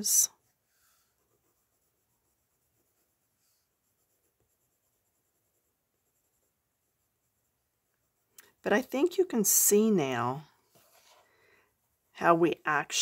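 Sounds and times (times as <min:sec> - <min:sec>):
pencil scratching on paper: 0:00.0 - 0:13.0.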